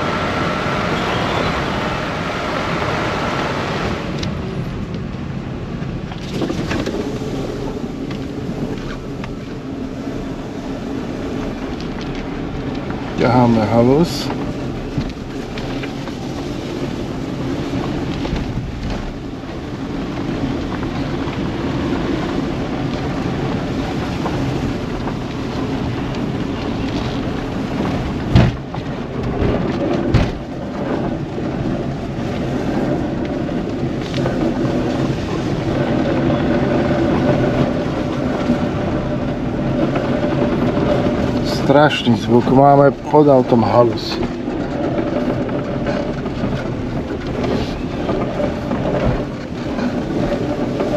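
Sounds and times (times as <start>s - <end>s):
car engine and road noise: 0.0s - 50.9s
rough scraping noise under car: 26.8s - 50.9s
person talking: 41.4s - 44.3s.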